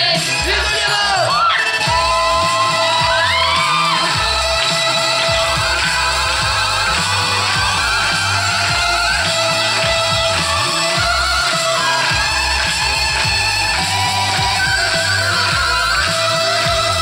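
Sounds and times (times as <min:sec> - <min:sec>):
voices whooping in glides: 0:01.2 - 0:17.0
low electronic beat: 0:01.8 - 0:17.0.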